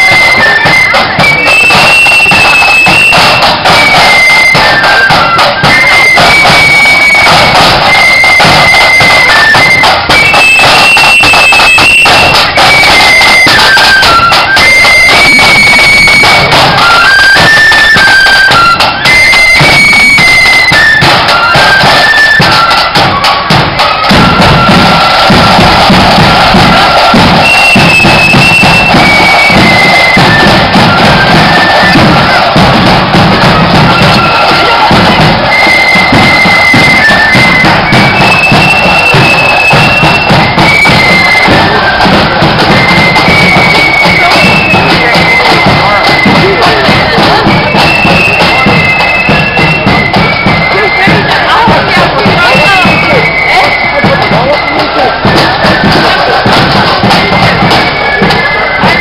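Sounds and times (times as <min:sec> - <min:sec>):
flutes playing fast melody: 0:00.0 - 0:59.0
side drums: 0:00.0 - 0:59.0.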